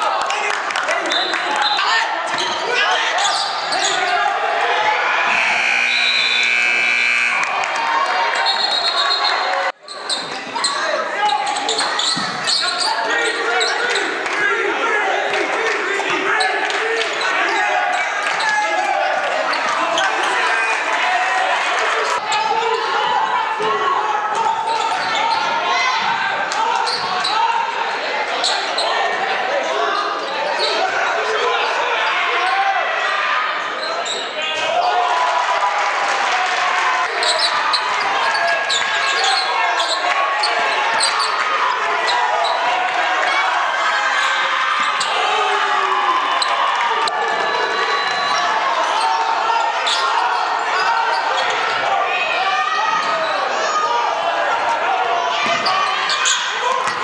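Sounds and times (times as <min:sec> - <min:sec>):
people calling out: 0:00.0 - 0:35.5, 0:36.3 - 0:57.0.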